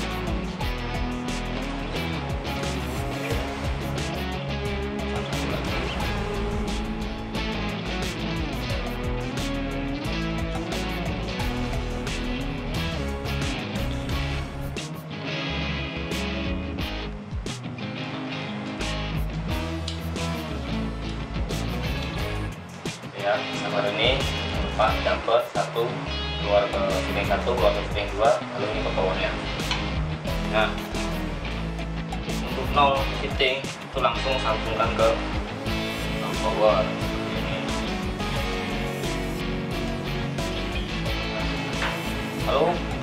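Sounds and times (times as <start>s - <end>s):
music with guitar and beat: 0.0s - 43.0s.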